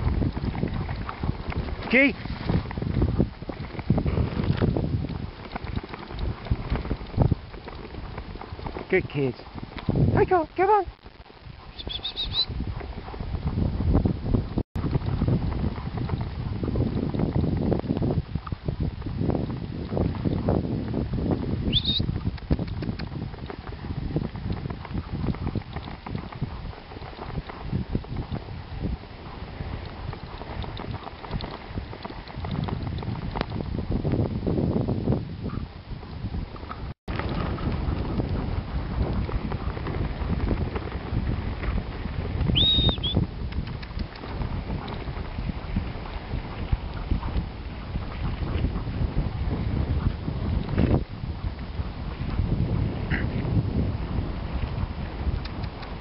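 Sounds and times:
low uneven rumble of sled: 0.0 - 10.4, 11.0 - 56.0
wind buffeting microphone: 0.0 - 56.0.

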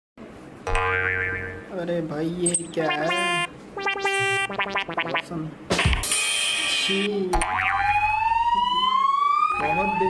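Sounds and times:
cartoon boing sound effect: 0.7 - 1.7, 2.9 - 6.1, 7.4 - 8.1.

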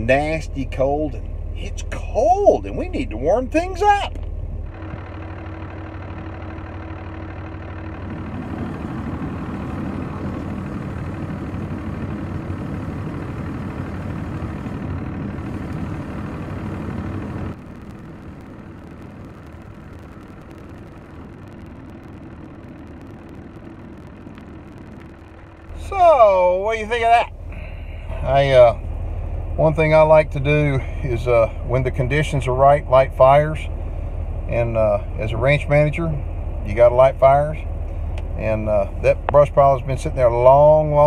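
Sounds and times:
propane torch hissing roar: 7.9 - 39.1.

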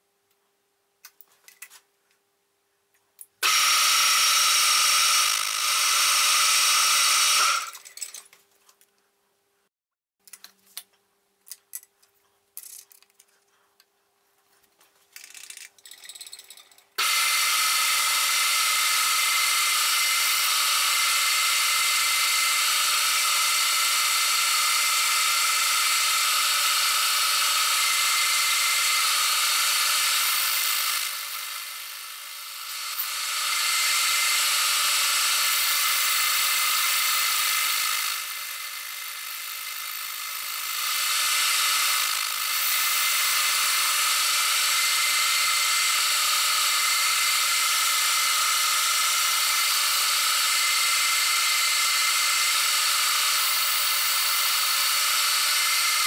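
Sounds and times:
milling machine whine: 3.4 - 7.9, 17.0 - 56.0.

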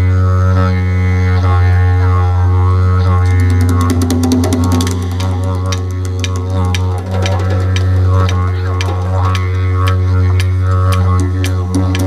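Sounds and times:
didgeridoos droning: 0.0 - 12.0
sharp percussion hits: 3.2 - 12.0.

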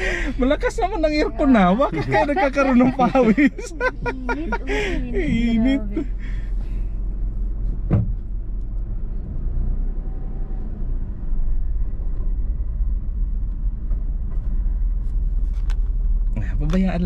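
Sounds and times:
car cabin rumble: 0.0 - 9.5.

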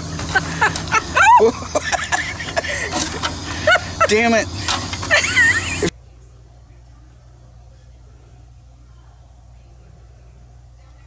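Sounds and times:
steady low hum: 0.0 - 11.0
people laughing and exclaiming: 0.2 - 5.9.

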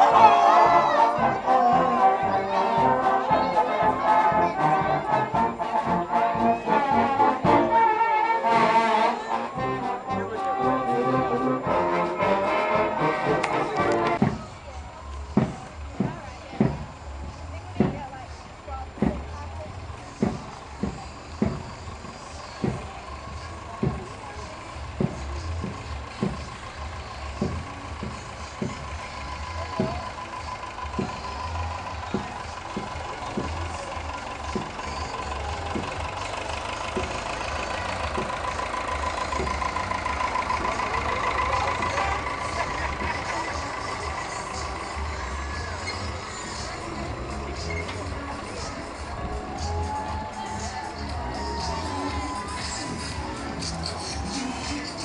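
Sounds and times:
brass band playing: 0.0 - 14.3
drum beating marching time: 0.0 - 55.0
low rumble of vehicle engines: 0.0 - 55.0.

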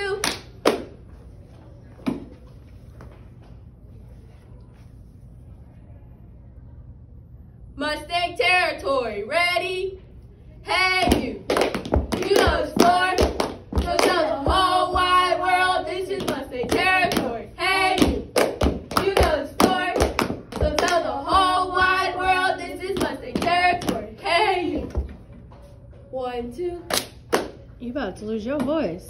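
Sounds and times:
girls chanting a cheer: 0.0 - 0.5, 7.8 - 10.0, 10.6 - 25.0
hand claps and slaps: 0.2 - 1.0, 11.0 - 14.4, 18.0 - 21.0, 26.9 - 27.6.

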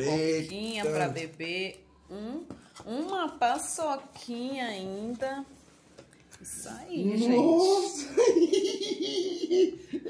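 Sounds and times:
person laughing: 8.0 - 10.0.

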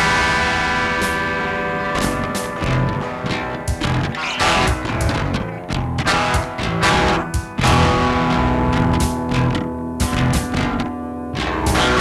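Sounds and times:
sharp hit: 0.0 - 10.6
distorted electric guitar chord: 0.0 - 12.0.

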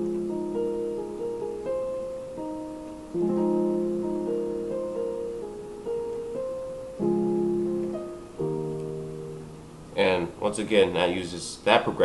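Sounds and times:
digital keyboard chords: 0.0 - 10.2.

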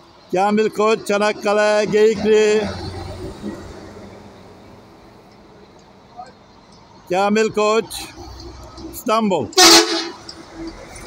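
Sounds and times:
diesel bus engine rumbling: 0.0 - 11.0.

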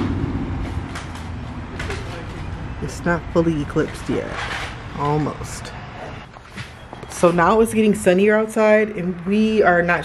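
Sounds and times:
low outdoor rumble: 0.0 - 6.0.

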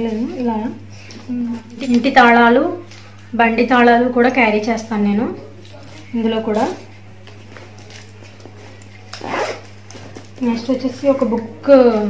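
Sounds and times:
low electrical hum: 0.0 - 12.0
items rustling in a handbag: 5.6 - 12.0.

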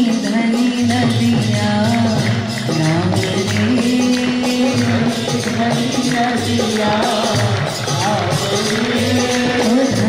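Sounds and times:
instrumental accompaniment: 0.0 - 10.0
woman singing devotional song: 0.0 - 10.0.

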